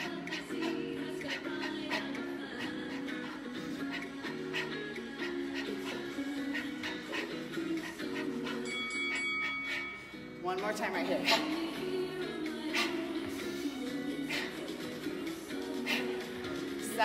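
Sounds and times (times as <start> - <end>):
background music with steady beat: 0.0 - 17.0.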